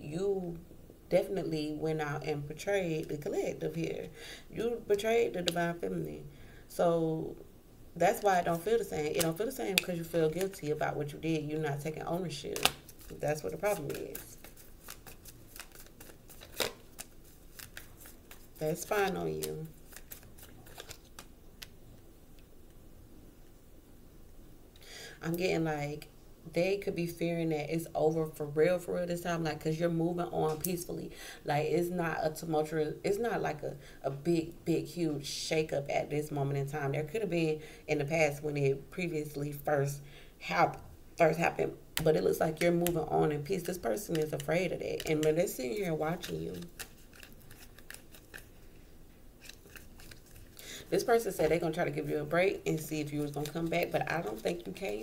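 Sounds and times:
cards clicking in hands: 46.5s - 48.5s.

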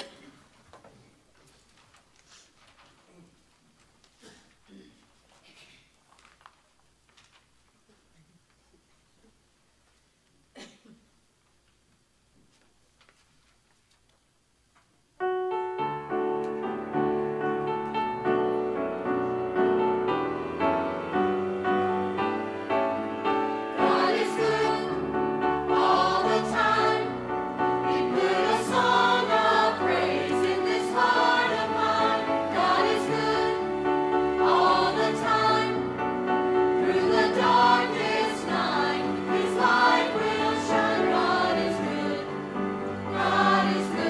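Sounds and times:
mixed choir singing: 23.1s - 44.0s.

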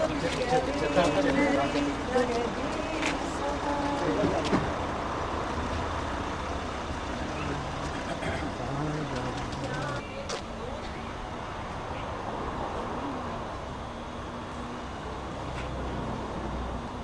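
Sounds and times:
engine idling: 0.0s - 11.4s
voices: 0.0s - 15.8s.

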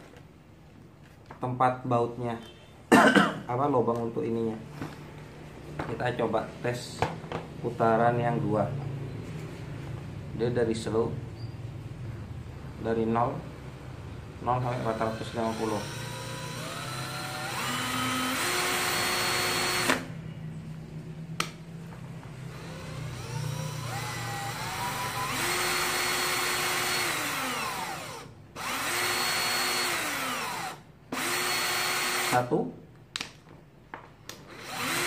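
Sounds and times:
cordless drill motor whining: 14.6s - 20.1s, 22.5s - 32.4s, 34.5s - 35.0s.

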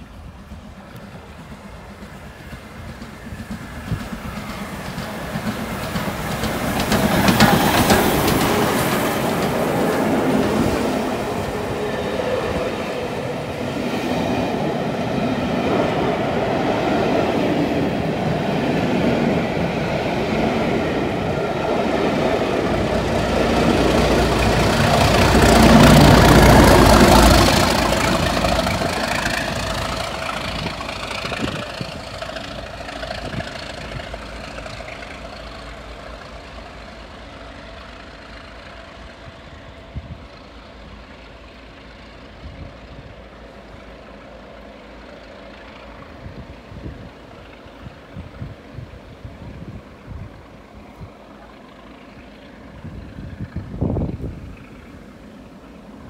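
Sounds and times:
coach wheels clattering on rails: 0.0s - 56.0s
steam locomotive passing: 0.0s - 56.0s.

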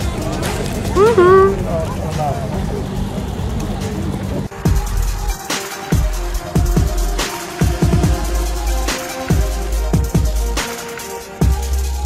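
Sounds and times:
outdoor background noise: 0.0s - 10.9s
woman humming: 1.0s - 1.6s.

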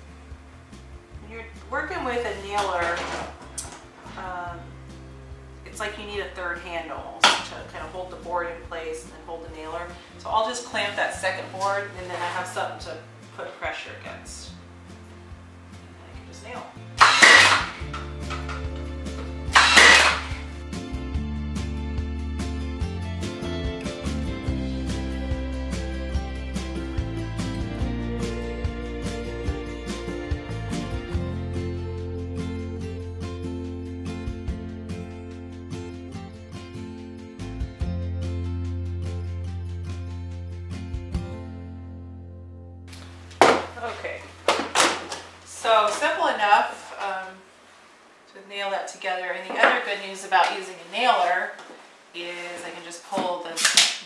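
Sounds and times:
background music: 0.0s - 45.8s
plucked string music: 16.9s - 21.1s
nail gun shots: 17.0s - 17.8s, 19.5s - 20.4s.

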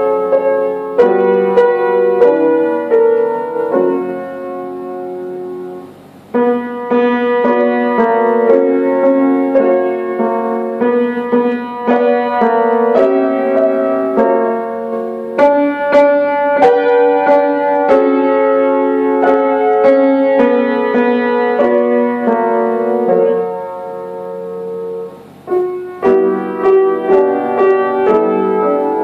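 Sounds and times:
piano duet: 0.0s - 29.0s.

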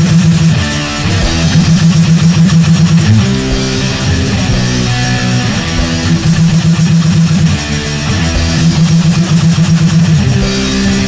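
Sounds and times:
bass guitar: 0.0s - 11.0s
distorted electric guitar: 0.0s - 11.0s
drums: 0.0s - 11.0s.

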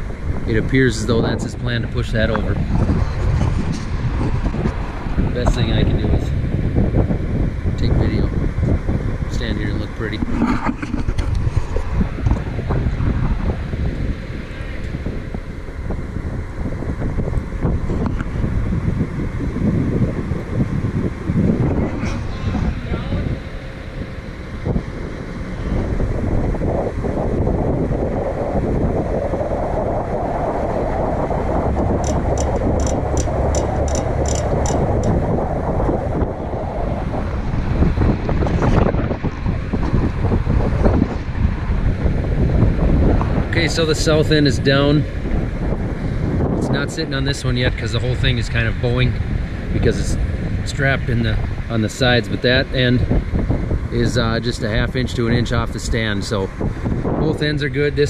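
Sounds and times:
low machine hum: 0.0s - 58.0s
wind buffeting microphone: 0.0s - 58.0s.

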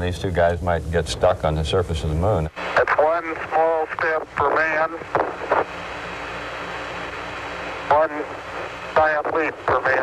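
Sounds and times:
radio static hiss: 0.0s - 10.0s
voice over radio: 2.8s - 5.4s, 7.9s - 8.4s, 9.0s - 10.0s.

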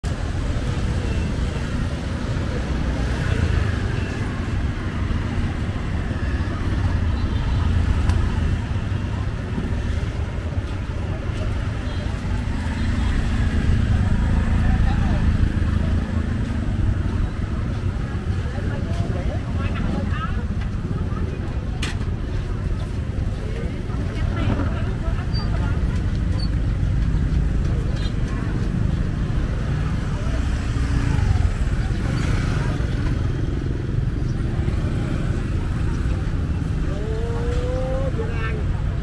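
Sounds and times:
motorbike and rickshaw engines: 0.0s - 39.0s
people talking: 0.1s - 33.6s, 34.2s - 39.0s.

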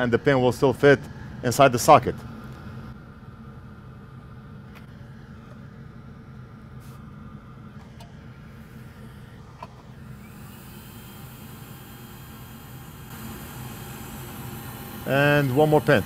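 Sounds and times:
equipment humming: 0.0s - 16.0s.

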